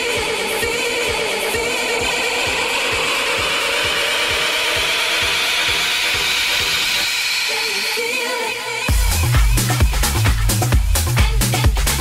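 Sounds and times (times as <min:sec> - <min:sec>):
four-on-the-floor kick drum: 0:00.0 - 0:07.2, 0:08.9 - 0:12.0
noisy synth sweep: 0:00.0 - 0:10.7.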